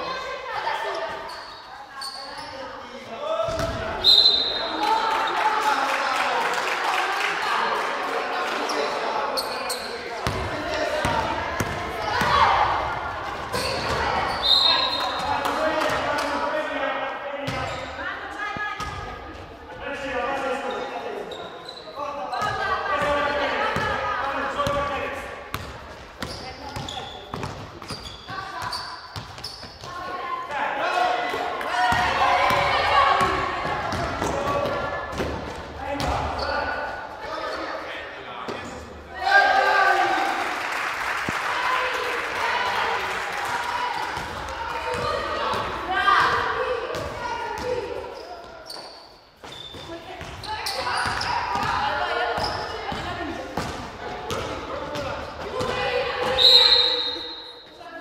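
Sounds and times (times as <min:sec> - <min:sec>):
people calling out in a hall: 0:00.0 - 0:17.3, 0:39.1 - 0:48.9, 0:49.9 - 0:58.0
basketball bouncing on gym floor: 0:03.5 - 0:03.9, 0:10.2 - 0:12.5, 0:25.5 - 0:30.0.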